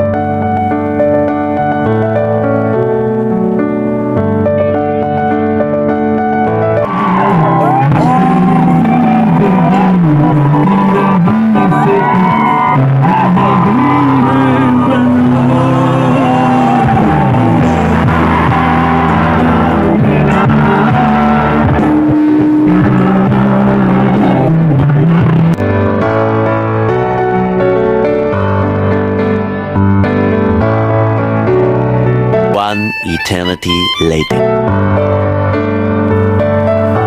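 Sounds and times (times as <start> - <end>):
steady piano music: 0.0 - 37.0
live band music with singer: 6.8 - 24.6, 32.5 - 34.5.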